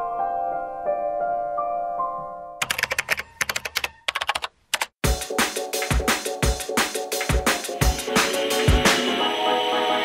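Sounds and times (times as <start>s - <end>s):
computer keyboard typing: 2.6s - 5.0s
drum and bass music: 5.0s - 10.0s.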